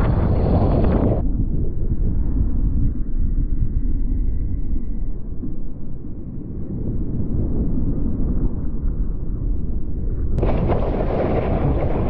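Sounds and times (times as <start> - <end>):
deep wind rumble: 0.0 - 12.0.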